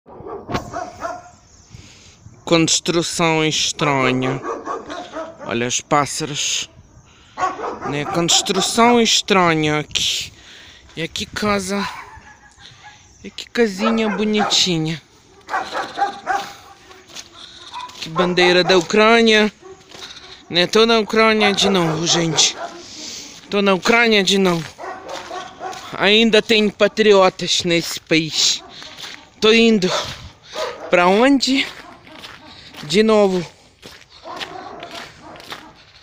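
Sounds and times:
dog barking: 0.1s - 1.4s, 4.2s - 5.6s, 7.3s - 9.0s, 11.8s - 13.0s, 13.7s - 23.4s, 24.7s - 26.0s, 28.4s - 32.7s, 34.2s - 35.9s.

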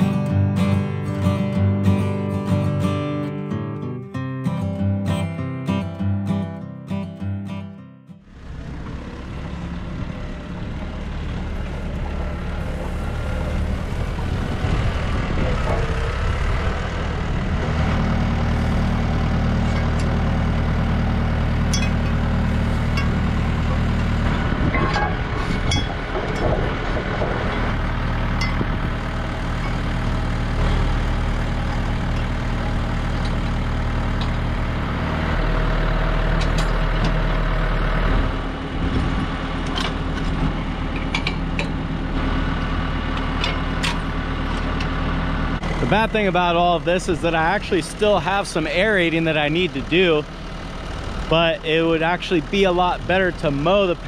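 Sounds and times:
tractor diesel engine running: 8.2s - 54.0s
metallic clinks and knocks: 21.7s - 22.2s.

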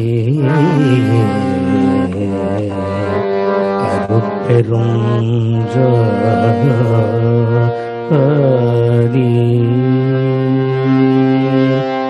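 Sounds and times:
instrumental accompaniment: 0.0s - 12.0s
man singing devotional song: 0.0s - 12.0s.

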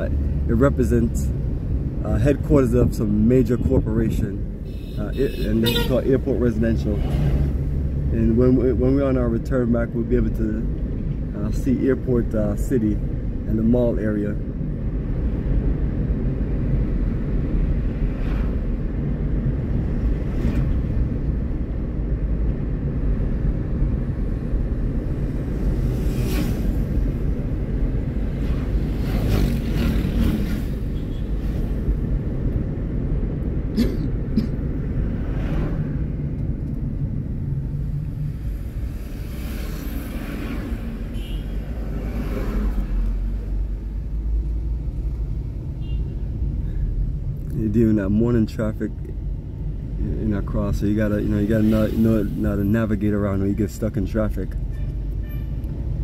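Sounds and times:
car road and engine rumble: 0.0s - 56.0s
rushes of noise: 24.7s - 32.4s.

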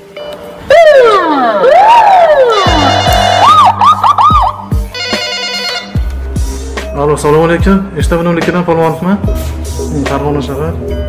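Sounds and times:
music with steady tones: 0.0s - 11.0s
police siren wailing: 0.6s - 5.7s
deep bass hits: 2.6s - 5.0s.

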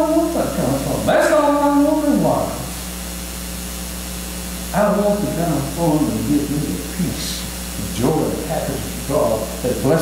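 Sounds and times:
man speaking: 0.0s - 2.8s, 4.7s - 10.0s
background hiss: 0.0s - 10.0s.

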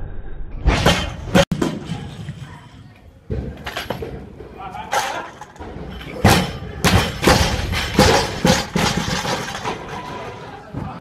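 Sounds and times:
barbell bouncing thuds and clatters: 4.9s - 10.3s.

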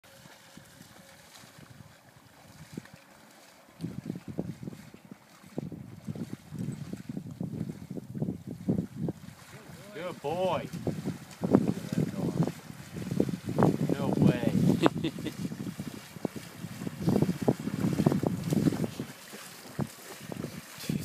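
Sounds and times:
splashing steps in shallow water: 0.0s - 21.0s.

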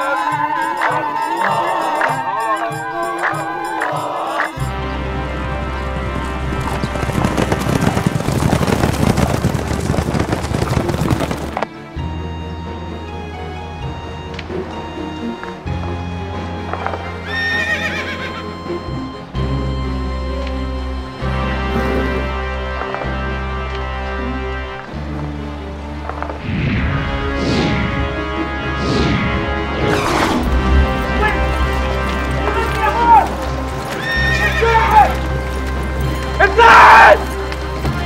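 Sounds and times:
dramatic background music drone: 0.0s - 10.5s, 11.1s - 38.0s
hooves clattering: 0.0s - 12.1s, 14.2s - 19.8s, 29.8s - 38.0s
horse whinnying: 17.2s - 18.5s, 29.9s - 35.3s.

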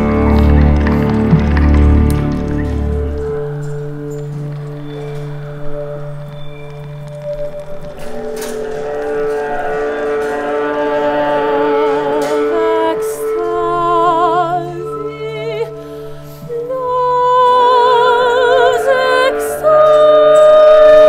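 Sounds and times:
scattered knocks: 0.0s - 4.7s
deep low drone: 0.0s - 16.9s
chamber ensemble held tones: 0.0s - 21.0s.

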